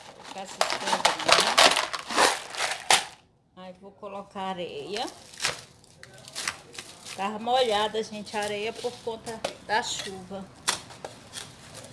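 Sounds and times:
plastic bag rustling: 0:00.0 - 0:03.2, 0:05.0 - 0:09.4.

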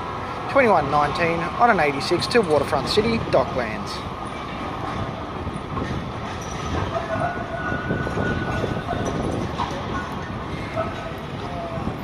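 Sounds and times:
city street noise: 0:00.0 - 0:12.0
tram running on rails: 0:00.0 - 0:12.0.

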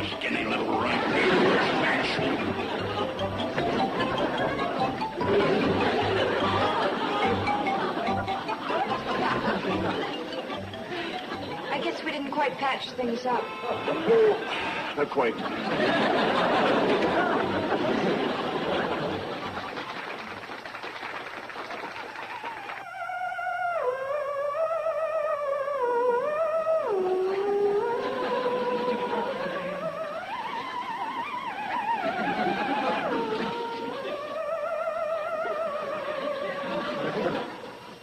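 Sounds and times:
theremin melody: 0:00.0 - 0:11.9, 0:22.4 - 0:37.6.

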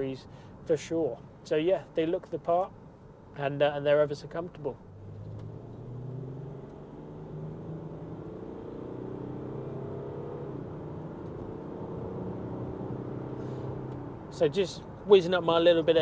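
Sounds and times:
diesel engine accelerating: 0:04.9 - 0:14.4.

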